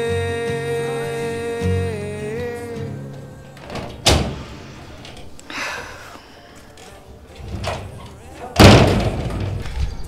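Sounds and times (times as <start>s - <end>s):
loud slam: 8.6s - 9.6s.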